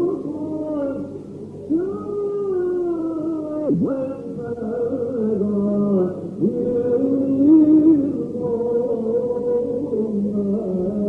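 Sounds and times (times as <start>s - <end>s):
man chanting long notes: 0.0s - 11.0s.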